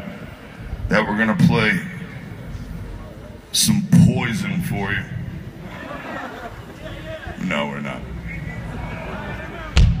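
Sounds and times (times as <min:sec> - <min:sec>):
faint crowd voices: 0:00.0 - 0:10.0
low pa hum: 0:00.0 - 0:10.0.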